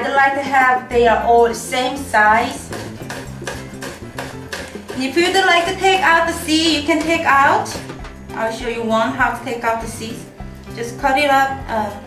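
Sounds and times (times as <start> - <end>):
background music: 0.0 - 12.0
knife tapping on cutting board: 2.7 - 5.0.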